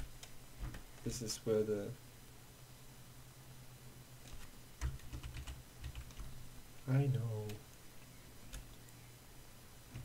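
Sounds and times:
computer keyboard keys clicking: 4.3s - 6.3s, 8.5s - 8.8s.

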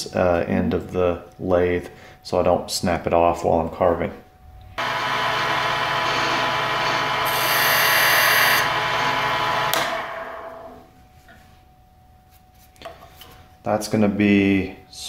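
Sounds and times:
lathe motor humming: 4.8s - 10.8s
lathe winding down: 4.8s - 10.9s.

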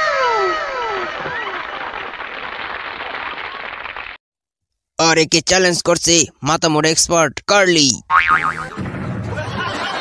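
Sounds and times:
crowd cheering and clapping: 0.0s - 4.2s
warbling boing sound effect: 8.1s - 8.9s.

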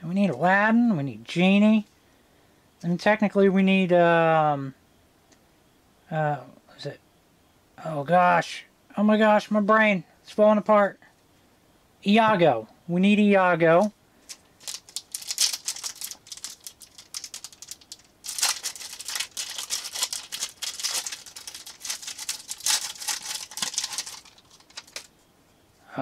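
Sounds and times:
foil wrapper crinkling: 13.8s - 25.1s.

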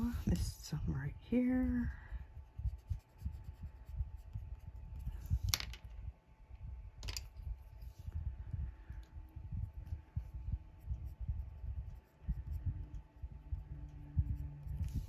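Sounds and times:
colored pencil rubbing strokes: 2.5s - 5.4s, 9.6s - 15.0s
pencil set down on table clicks: 7.0s - 7.3s.

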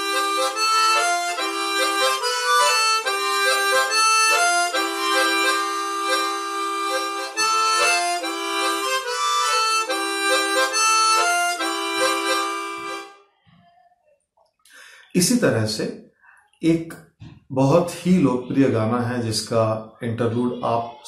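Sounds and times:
chromatic harmonica melody: 0.0s - 13.3s.

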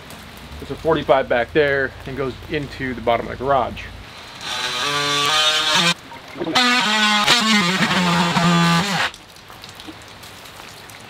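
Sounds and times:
power saw cutting pipe: 4.0s - 9.2s.

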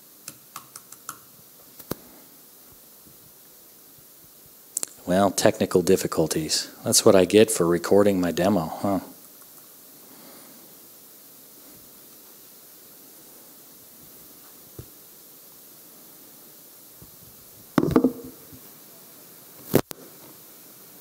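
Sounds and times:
sound system hiss: 0.0s - 0.6s, 1.2s - 21.0s
faint tap: 17.8s - 18.4s.

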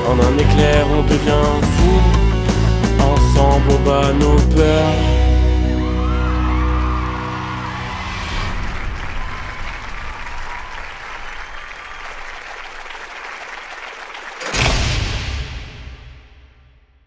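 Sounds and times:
rock song held chord: 0.0s - 5.9s
audience applause: 5.8s - 14.8s.

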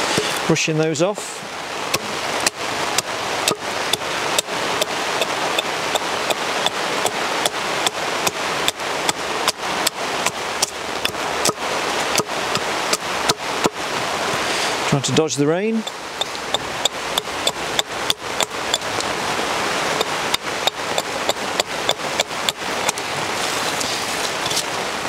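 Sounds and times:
continuous hiss: 0.0s - 25.0s.

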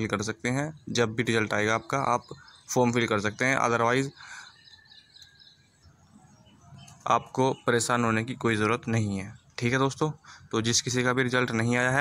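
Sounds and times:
distant bird chirps: 0.0s - 12.0s
faint background noise: 0.0s - 12.0s.

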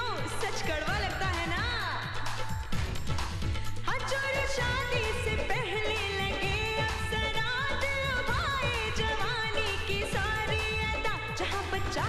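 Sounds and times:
drum and bass beat: 0.0s - 12.0s.

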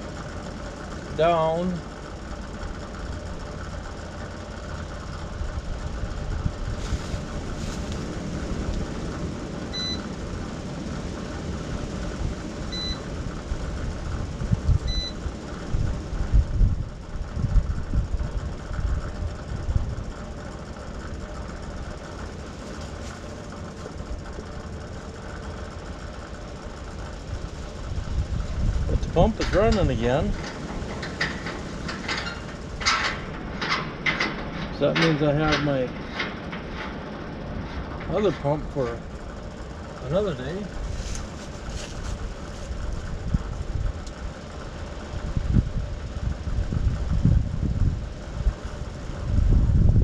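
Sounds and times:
engine idling: 0.0s - 50.0s
low bumps: 27.2s - 44.0s.

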